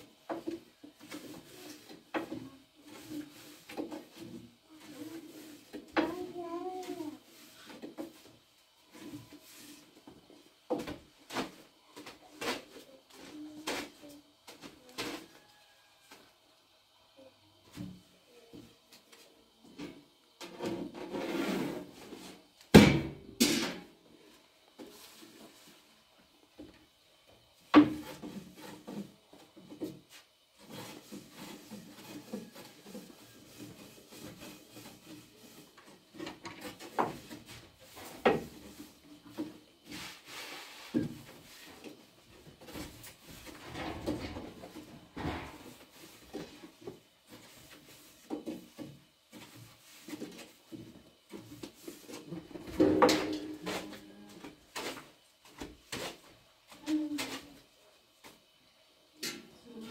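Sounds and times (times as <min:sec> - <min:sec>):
rolling pin rolling dough: 0:27.8 - 0:52.6.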